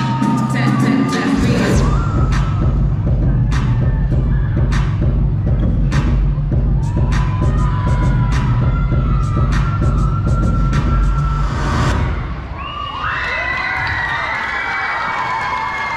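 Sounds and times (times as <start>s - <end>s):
dance music with heavy bass: 0.0s - 12.0s
audience cheering and shouting: 0.0s - 15.9s.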